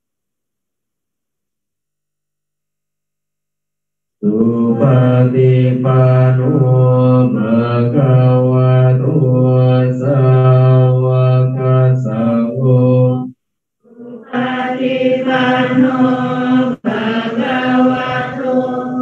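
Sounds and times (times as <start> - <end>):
devotional chanting on one pitch: 4.2 - 19.0.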